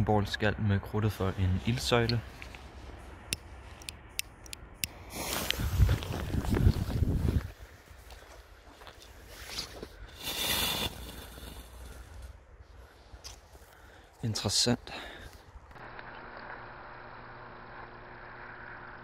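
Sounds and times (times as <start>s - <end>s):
firework powder hissing: 10.1s - 12.1s.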